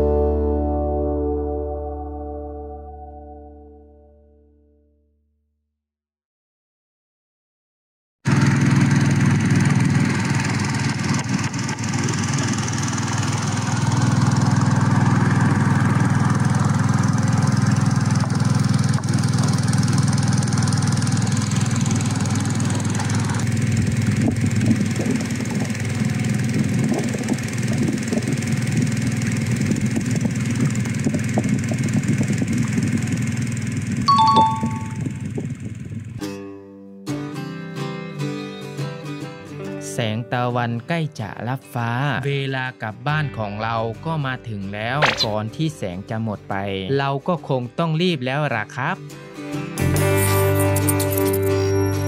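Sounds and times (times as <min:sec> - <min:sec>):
boat engine running: 0:08.3 - 0:36.2, 0:45.0 - 0:45.5
short high tones: 0:34.1 - 0:35.2.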